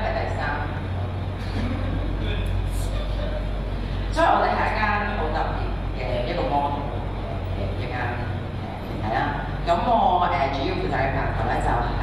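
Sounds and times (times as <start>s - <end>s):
woman speaking over pa system: 0.0s - 1.1s, 4.1s - 12.0s
low electrical hum: 0.0s - 12.0s.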